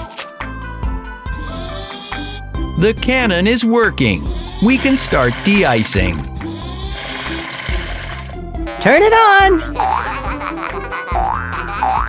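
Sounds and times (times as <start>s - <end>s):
light background music: 0.0s - 12.0s
cartoon spray hiss: 4.7s - 6.3s, 6.9s - 8.4s.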